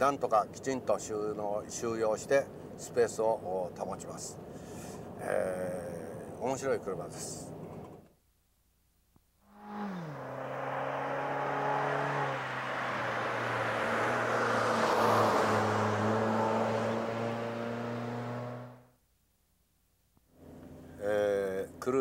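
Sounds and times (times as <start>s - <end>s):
car engine passing: 9.5s - 18.9s.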